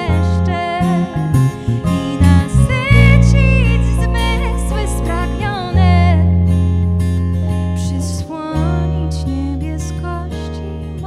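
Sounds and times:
woman singing: 0:00.0 - 0:06.4, 0:07.8 - 0:11.0
acoustic guitar: 0:00.0 - 0:11.0
deep sustained bass notes: 0:00.0 - 0:11.0.

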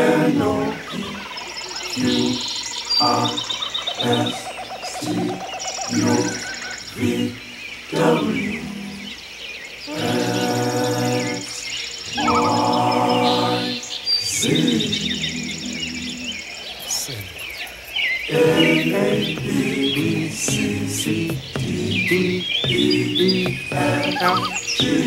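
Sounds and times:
voices singing in harmony: 0:00.0 - 0:25.0
bird chirps and calls: 0:00.5 - 0:25.0.

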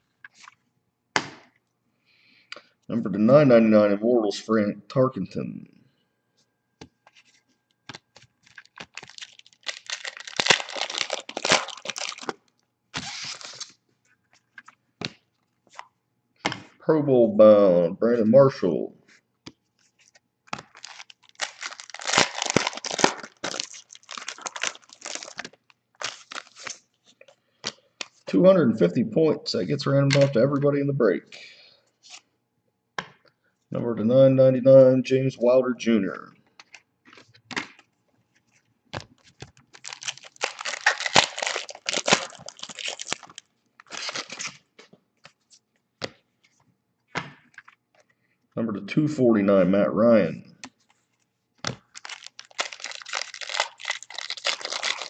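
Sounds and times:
foil wrapper tearing and crinkling: 0:08.4 - 0:12.4, 0:13.0 - 0:13.8, 0:20.5 - 0:26.8, 0:39.7 - 0:44.6, 0:51.8 - 0:55.0.

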